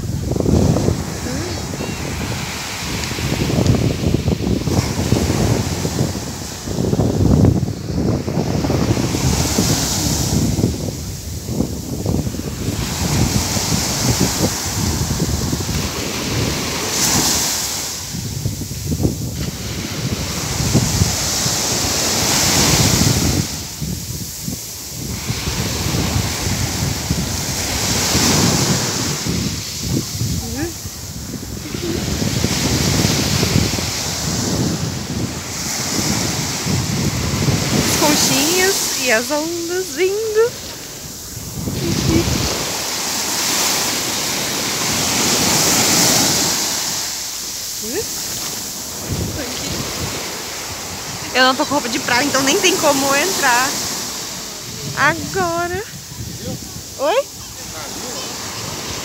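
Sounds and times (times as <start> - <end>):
small waves breaking on sand: 0.0 - 59.0
wind buffeting microphone: 0.0 - 59.0.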